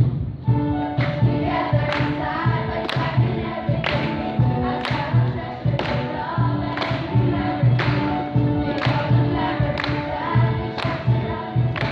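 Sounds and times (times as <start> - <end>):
instrumental accompaniment with beat: 0.0 - 11.9
choir singing: 1.2 - 11.9.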